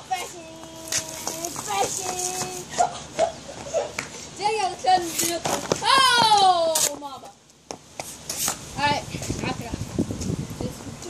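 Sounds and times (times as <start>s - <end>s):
children shouting and yelling: 5.7s - 7.0s.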